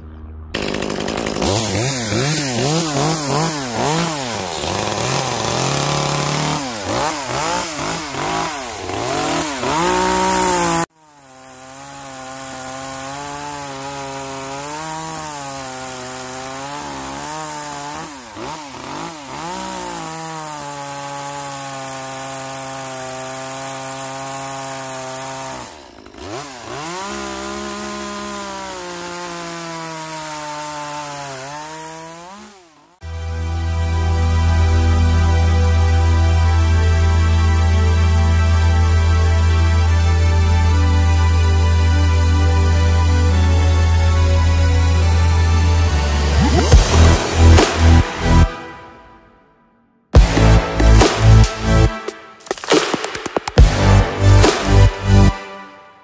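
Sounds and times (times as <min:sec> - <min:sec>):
chainsaw cutting wood: 0:00.5 - 0:48.8, 0:50.2 - 0:55.7.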